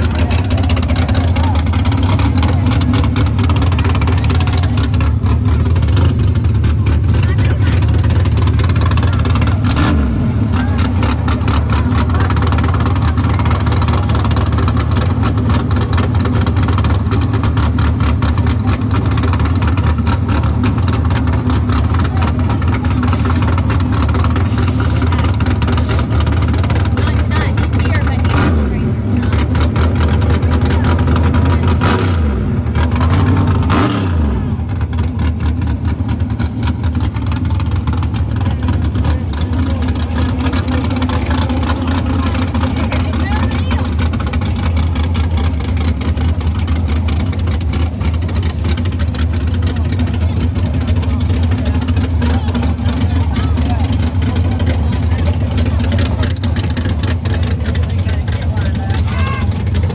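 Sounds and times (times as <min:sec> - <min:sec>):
race car engines idling loudly: 0:00.0 - 0:59.9.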